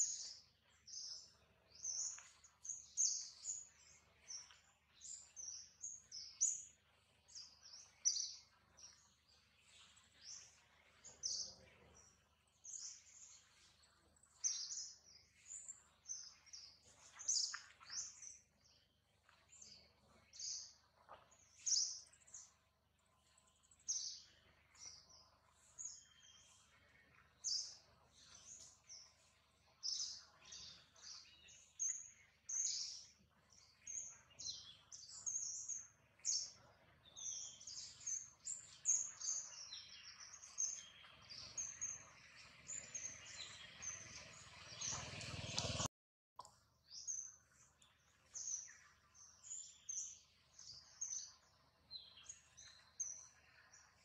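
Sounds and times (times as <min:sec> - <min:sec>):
small birds chirping: 0:00.0 - 0:54.0.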